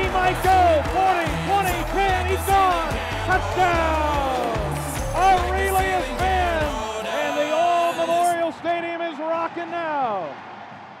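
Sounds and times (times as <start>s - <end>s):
man shouting excitedly: 0.0s - 8.8s.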